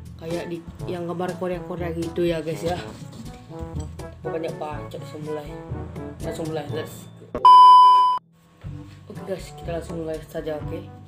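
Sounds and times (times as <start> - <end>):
electronic bleep tone: 7.4 - 8.2.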